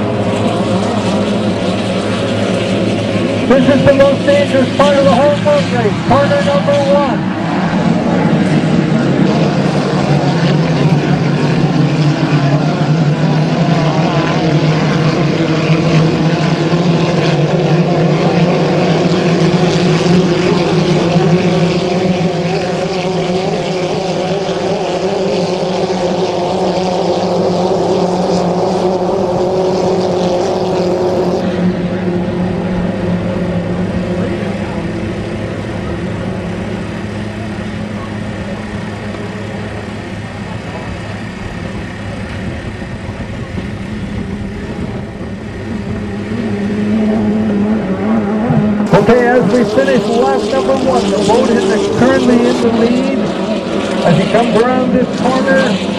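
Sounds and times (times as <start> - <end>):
racing boat engines droning: 0.0 - 55.9.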